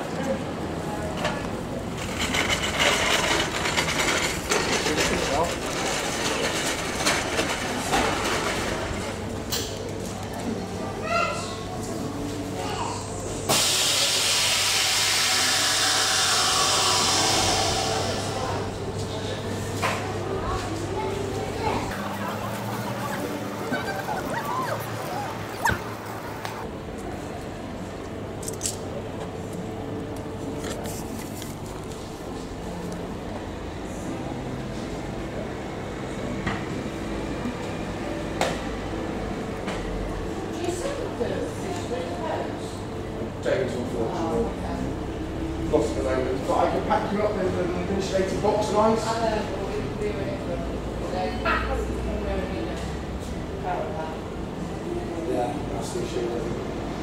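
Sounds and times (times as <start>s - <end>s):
low machinery hum: 0.0s - 57.0s
loud steady hiss: 13.5s - 18.7s.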